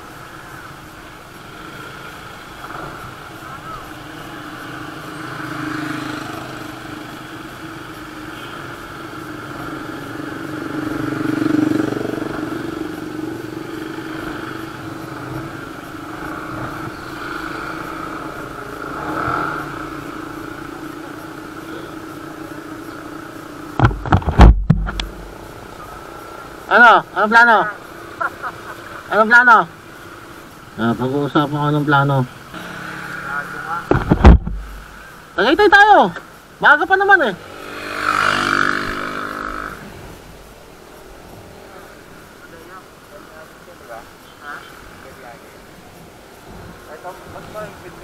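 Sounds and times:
motorcycle engines idling: 0.0s - 48.0s
loud low thumps: 23.8s - 25.2s, 33.9s - 34.9s.

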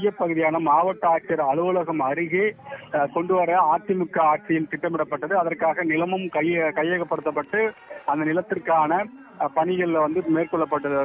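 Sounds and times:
man speaking over telephone: 0.0s - 11.0s.

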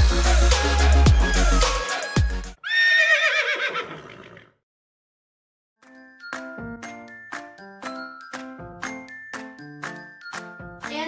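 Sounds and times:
electronic music: 0.0s - 2.6s
horse whinnying: 2.6s - 4.5s.

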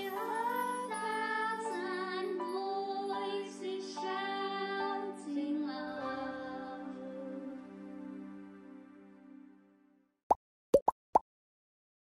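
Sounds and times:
rising plop sound effects: 10.8s - 11.2s.

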